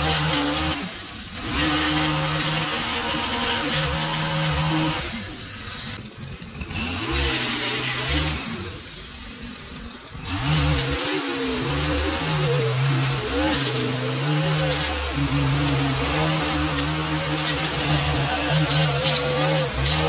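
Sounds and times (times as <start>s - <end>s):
string trimmer revving: 0.0s - 20.0s.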